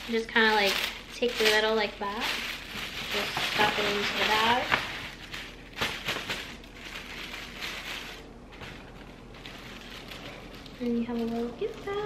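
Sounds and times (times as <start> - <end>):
tissue paper crinkling in foil bag: 0.0 - 12.0.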